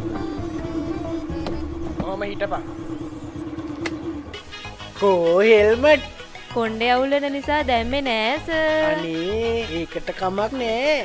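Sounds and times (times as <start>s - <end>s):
scooter engine humming: 0.0s - 11.0s.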